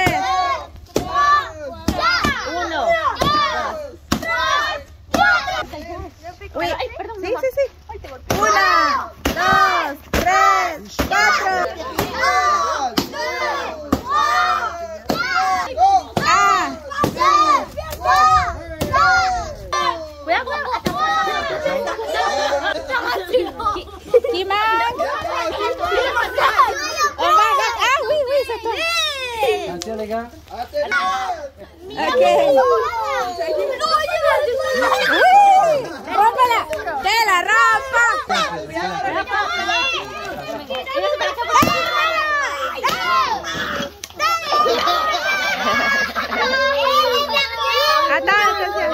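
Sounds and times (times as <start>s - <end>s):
wooden stick striking pinata: 0.0s - 5.6s, 8.2s - 18.1s, 41.5s - 42.0s
children shouting and chanting: 0.0s - 5.8s, 8.2s - 48.9s.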